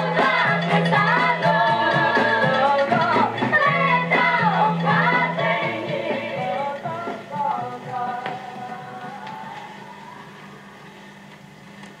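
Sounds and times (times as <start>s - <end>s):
vinyl surface hiss: 0.0s - 12.0s.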